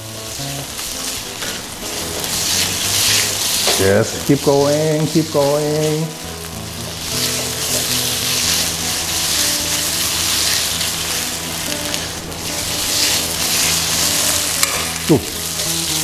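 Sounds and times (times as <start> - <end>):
meat sizzling in a wok: 0.0 - 16.0
spatula stirring: 0.2 - 16.0.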